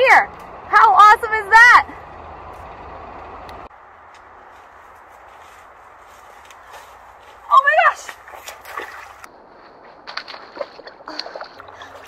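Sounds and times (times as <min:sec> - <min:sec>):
low outdoor rumble: 0:00.0 - 0:12.0
faint rustles: 0:04.3 - 0:07.5.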